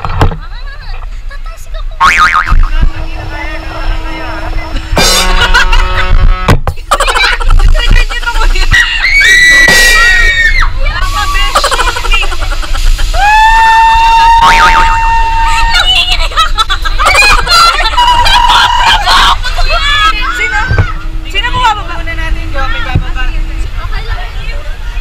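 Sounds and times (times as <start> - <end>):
wind rumble on microphone: 0.0 - 9.0, 16.6 - 25.0
people screaming and laughing: 6.9 - 21.2.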